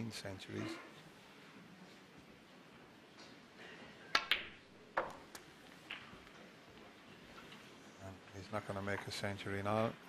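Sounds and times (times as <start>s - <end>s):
snooker balls clicking together: 4.1s - 6.4s.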